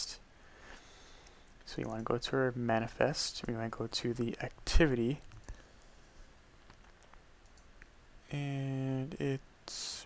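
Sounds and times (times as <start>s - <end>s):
computer keys and mouse clicks: 6.7s - 7.9s.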